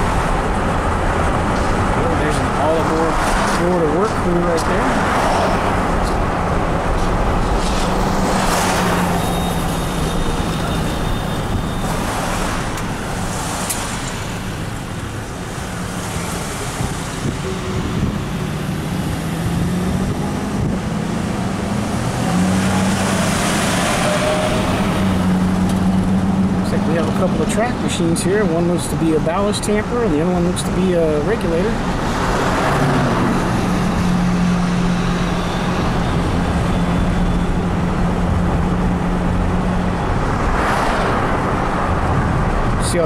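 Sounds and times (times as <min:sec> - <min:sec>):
car engine and road noise: 0:00.0 - 0:43.0.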